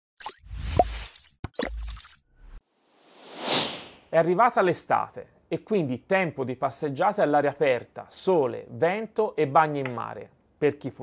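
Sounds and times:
whoosh: 0:02.7 - 0:04.1.

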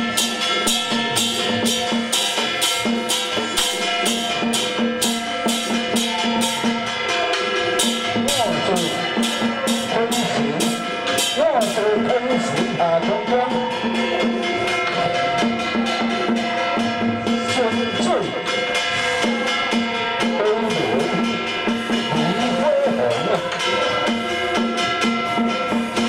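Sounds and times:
drum and percussion strokes: 0:00.0 - 0:26.0
held instrumental tones: 0:00.0 - 0:26.0.

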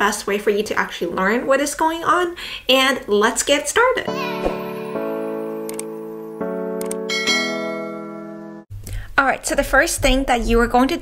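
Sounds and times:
bell-like chime: 0:04.1 - 0:08.4.

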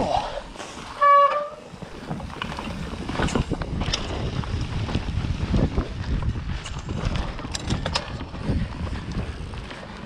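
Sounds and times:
bike tyres rolling on dirt: 0:00.0 - 0:10.0
bike rattles and knocks: 0:00.6 - 0:10.0
wind on microphone: 0:01.6 - 0:10.0.

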